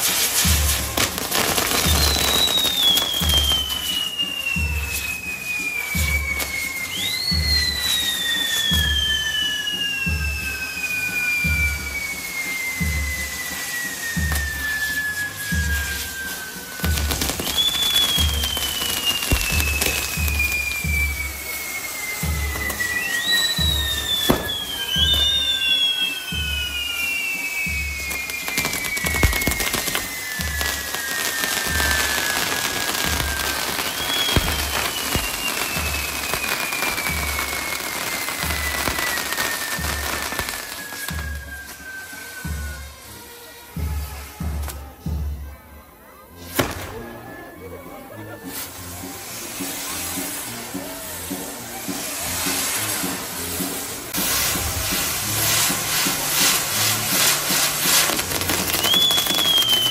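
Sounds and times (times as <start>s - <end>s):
firework bangs: 0.0s - 45.6s, 46.3s - 59.9s
firework whistles sliding down: 0.0s - 59.9s
fireworks crackling: 0.0s - 59.9s.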